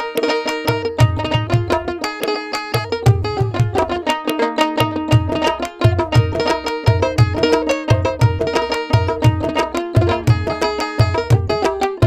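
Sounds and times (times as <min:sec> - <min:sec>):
plucked lute melody: 0:00.0 - 0:12.0.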